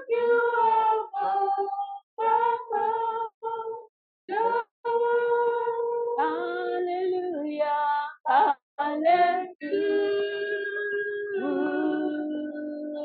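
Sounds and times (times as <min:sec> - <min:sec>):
woman singing unaccompanied: 0:00.0 - 0:13.0.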